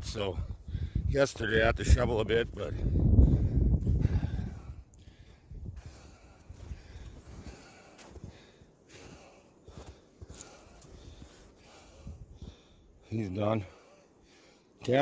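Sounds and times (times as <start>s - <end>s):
person breathing: 0.5s - 1.1s, 2.8s - 14.8s
footsteps in deep snow: 1.3s - 14.1s.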